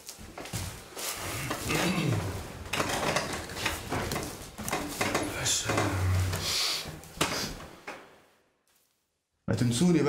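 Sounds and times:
person murmuring: 1.2s - 2.4s.

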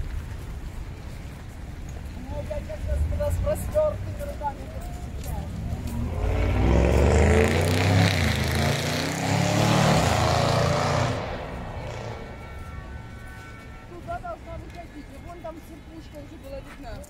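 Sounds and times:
vehicle driving past: 5.2s - 13.2s.

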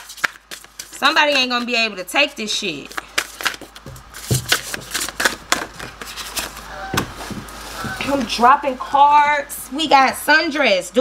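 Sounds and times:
cards being shuffled: 0.0s - 1.7s, 2.8s - 6.7s.

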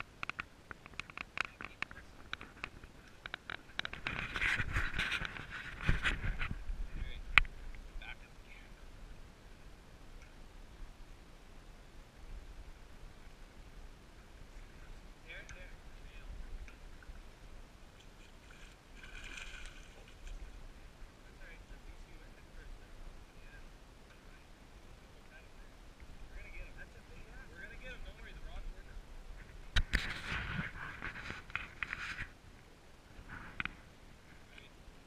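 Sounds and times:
wind rumbling on microphone: 0.0s - 35.0s.

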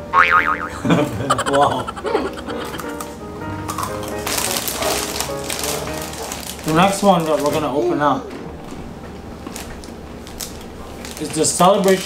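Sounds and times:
background music: 0.0s - 7.3s
plastic wrapping crinkling: 3.7s - 8.0s, 9.4s - 12.0s.

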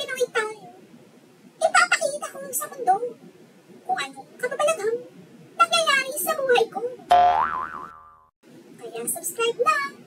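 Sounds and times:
cartoon boing: 7.1s - 8.3s.

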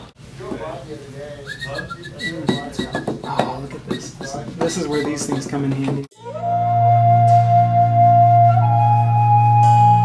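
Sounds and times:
faint voices: 0.4s - 6.1s
high whistled tone: 1.4s - 5.2s, 6.2s - 10.0s.

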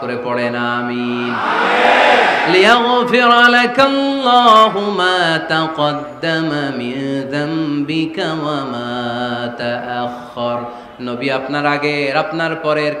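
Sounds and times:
man chanting a devotional verse: 0.0s - 1.3s, 2.5s - 13.0s.

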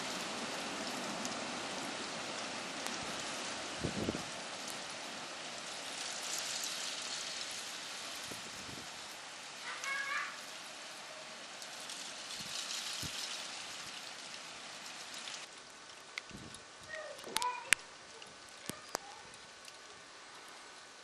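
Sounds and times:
graupel pattering: 5.5s - 19.9s.

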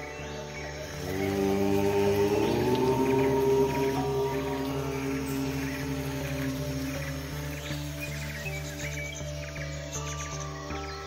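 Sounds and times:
long-held chant: 0.0s - 10.8s
soft background music: 0.0s - 11.0s.

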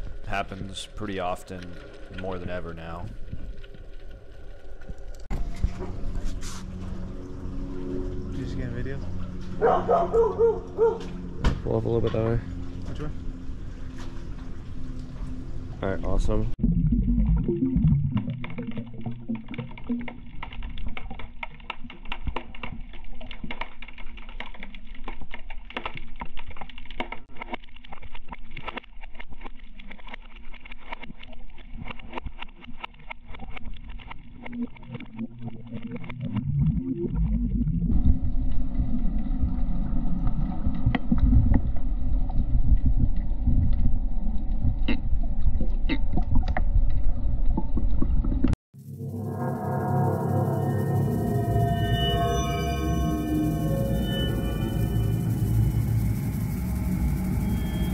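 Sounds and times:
dense crackle of sharp clicks: 18.1s - 36.7s
low water noise: 33.6s - 57.9s
steady low underwater rumble: 37.2s - 51.8s.

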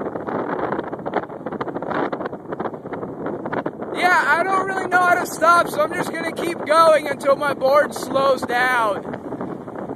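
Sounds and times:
skateboard wheels rumbling on asphalt: 0.0s - 9.9s
wind buffeting microphone: 0.0s - 9.9s.

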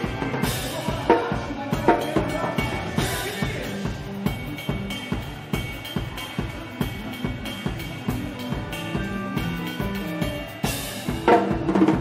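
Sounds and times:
band music: 0.0s - 12.0s
drum kit beat: 0.0s - 12.0s.

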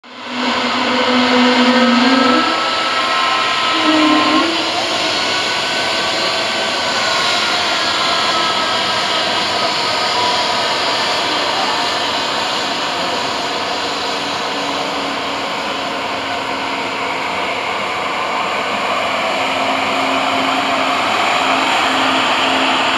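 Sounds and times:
jet engine whine: 0.0s - 22.9s.

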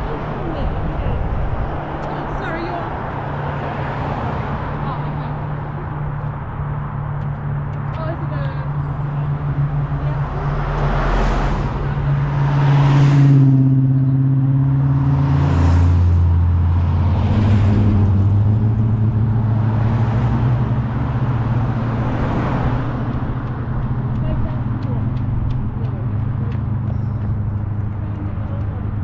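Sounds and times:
cars driving past: 0.0s - 29.0s.

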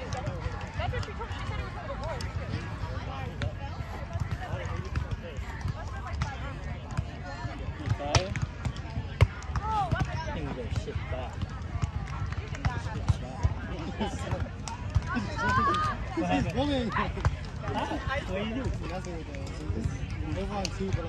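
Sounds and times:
chatter and calls: 0.0s - 21.0s.

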